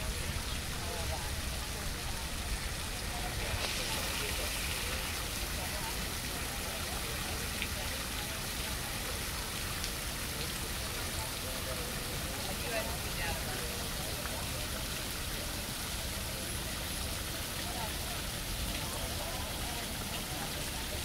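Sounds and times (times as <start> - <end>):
falling rain: 0.0 - 21.0.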